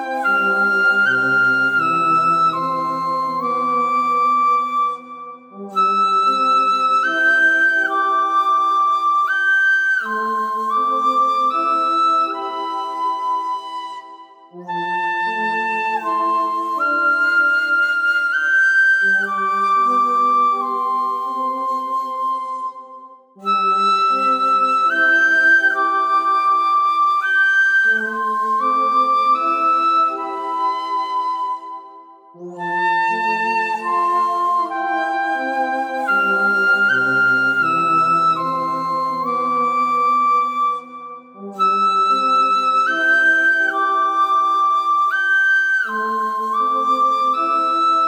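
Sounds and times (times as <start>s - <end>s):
bamboo flute melody: 0.0s - 48.0s.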